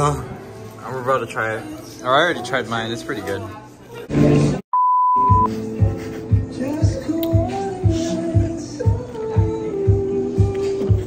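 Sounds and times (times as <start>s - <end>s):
high-pitched censor beep: 4.7s - 5.5s
background music with steady beat: 5.2s - 11.0s.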